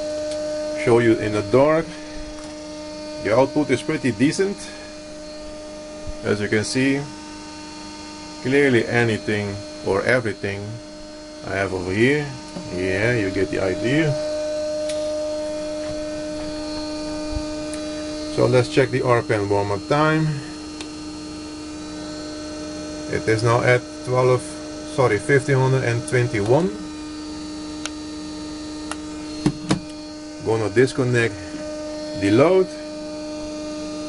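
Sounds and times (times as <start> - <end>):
motor-generator electrical hum: 0.0 - 34.0.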